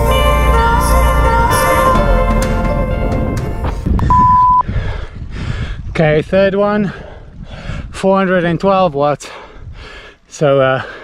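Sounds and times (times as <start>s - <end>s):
wind rumble on microphone: 3.0s - 10.0s
high beep: 4.0s - 4.6s.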